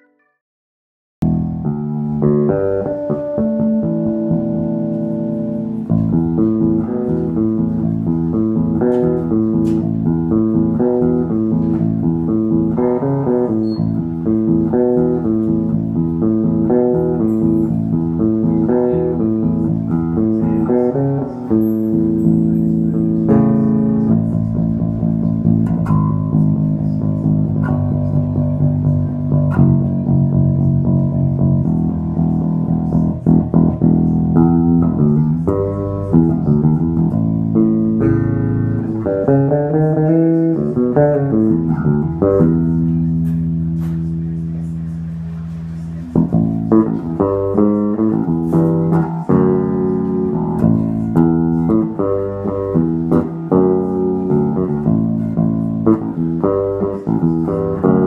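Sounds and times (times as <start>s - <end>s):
electric bass playing solo: 1.2s - 58.0s.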